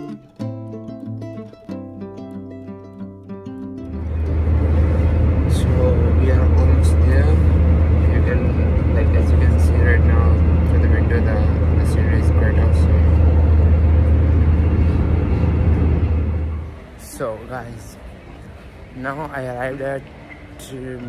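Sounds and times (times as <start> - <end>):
airliner cabin drone: 3.8 - 18.9.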